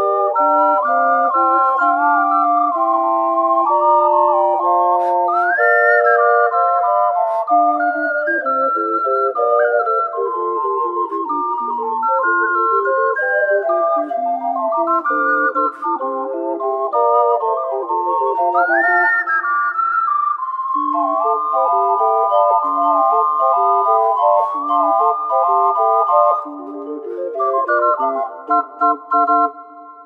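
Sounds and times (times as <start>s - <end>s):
ocarina ensemble playing jazzy piece: 0.0s - 29.9s.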